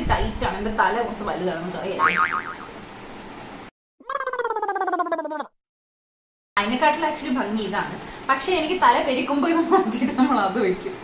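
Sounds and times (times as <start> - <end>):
cartoon boing sound effect: 2.0 - 2.8, 4.0 - 5.5.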